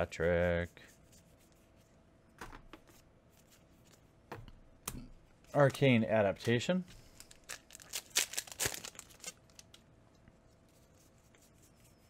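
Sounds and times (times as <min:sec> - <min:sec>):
trading cards rustling by hand: 0:05.4 - 0:09.8.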